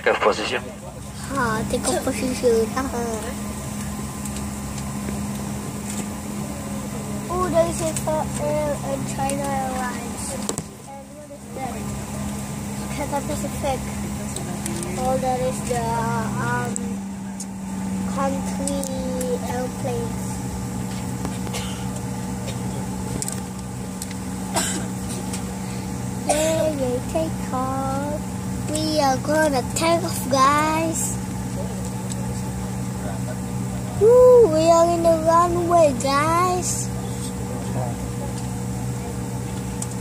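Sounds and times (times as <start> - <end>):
jet engines at low thrust: 0.0 - 40.0.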